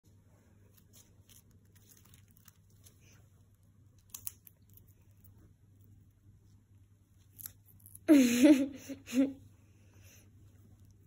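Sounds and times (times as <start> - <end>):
bird beak nibbling popcorn: 3.9 - 5.4.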